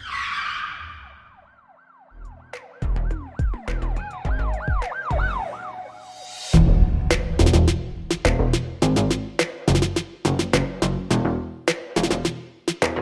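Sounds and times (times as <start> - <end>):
siren-like wail: 0.0 - 6.6
whoosh hit: 6.2 - 8.8
heavy bass drum hits: 6.6 - 10.0.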